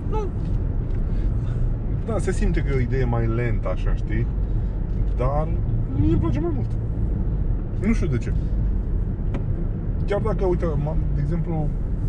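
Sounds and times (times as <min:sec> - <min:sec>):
car cabin road rumble: 0:00.0 - 0:12.0.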